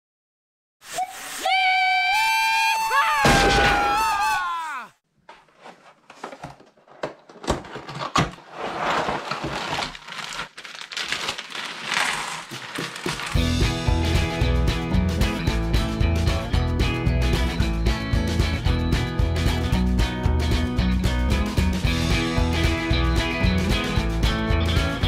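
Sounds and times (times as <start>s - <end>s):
plastic bag rustling: 5.2s - 13.4s.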